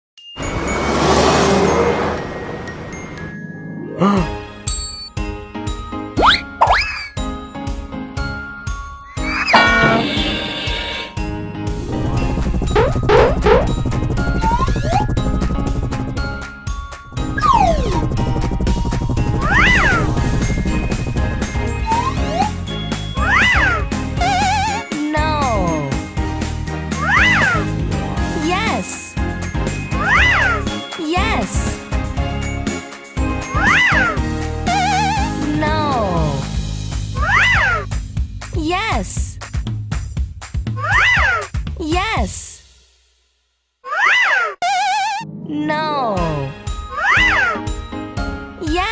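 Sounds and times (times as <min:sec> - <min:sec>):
cartoon background music: 0:00.9 - 0:39.4, 0:40.5 - 0:42.6, 0:43.8 - 0:48.9
cartoon pitched glide effect: 0:09.3 - 0:11.1, 0:12.4 - 0:15.8, 0:17.2 - 0:24.8, 0:27.0 - 0:27.6, 0:33.6 - 0:35.5, 0:43.9 - 0:45.3, 0:46.9 - 0:47.6
meow-like cartoon cry: 0:46.9 - 0:47.6.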